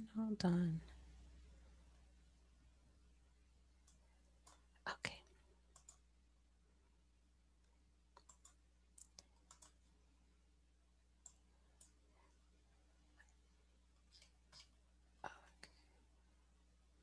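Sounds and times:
faint electrical hum: 0:00.0 - 0:17.0
computer mouse clicks: 0:03.8 - 0:04.7, 0:05.7 - 0:06.0, 0:08.1 - 0:09.8, 0:11.2 - 0:12.0.

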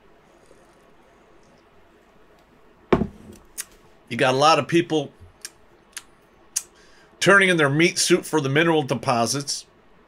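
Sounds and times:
glass mug thump on desk: 0:02.9 - 0:03.4.

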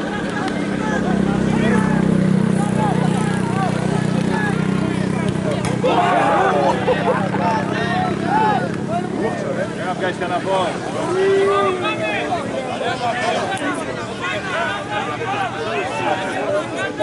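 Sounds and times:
people shouting: 0:05.4 - 0:09.2, 0:10.9 - 0:17.0.

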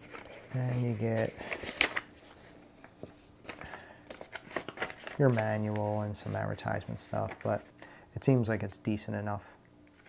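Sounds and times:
paper rustling: 0:00.0 - 0:07.7.

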